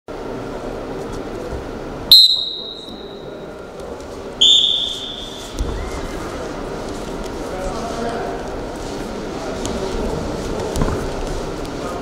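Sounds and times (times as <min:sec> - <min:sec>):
referee's whistle blasts: 0:02.1 - 0:03.3, 0:04.4 - 0:05.5.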